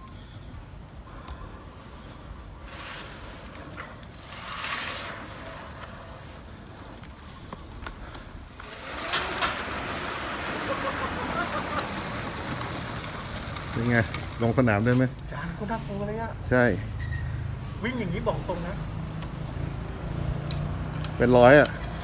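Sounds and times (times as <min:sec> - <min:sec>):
small tyres hissing on pavement: 0:01.2 - 0:22.0.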